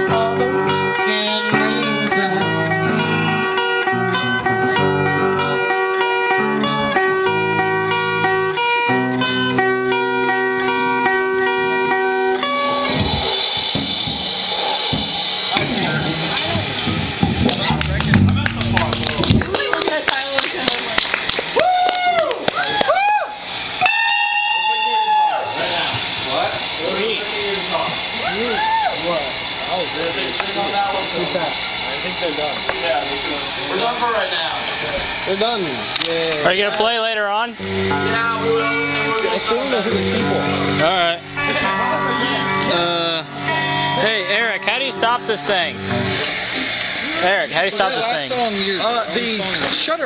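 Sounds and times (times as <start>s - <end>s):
electric guitar notes bending: 0.0s - 20.4s, 34.6s - 47.2s
bass notes: 0.0s - 20.9s, 34.9s - 47.6s
held guitar chords: 0.0s - 21.0s, 32.5s - 48.2s.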